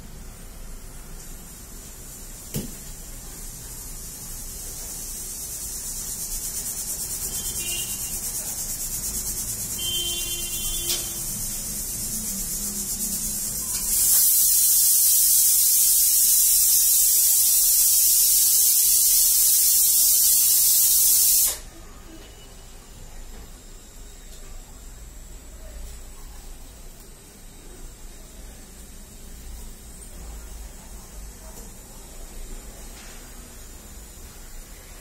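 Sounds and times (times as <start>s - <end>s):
steady high hiss: 0.0s - 22.0s.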